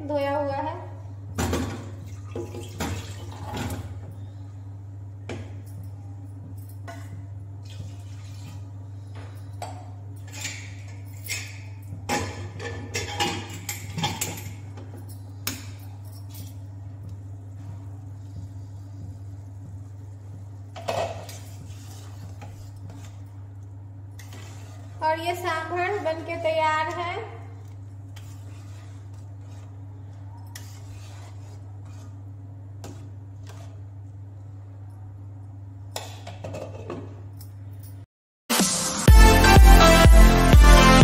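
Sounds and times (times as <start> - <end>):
steady low hum: 3.5 - 36.2
pots and utensils clattering: 9.2 - 16.6, 20.7 - 23.2, 36.0 - 37.3.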